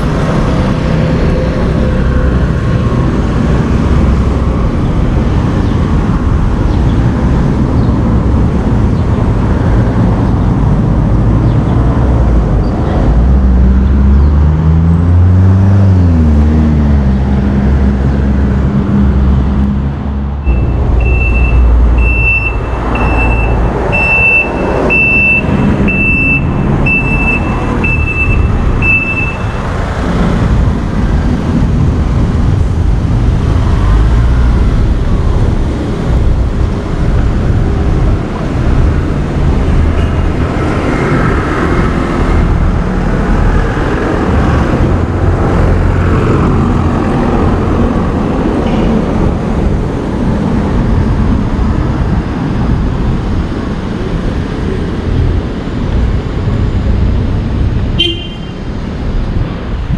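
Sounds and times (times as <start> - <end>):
road traffic: 0.0 - 59.9
high electronic beeper: 20.5 - 29.7.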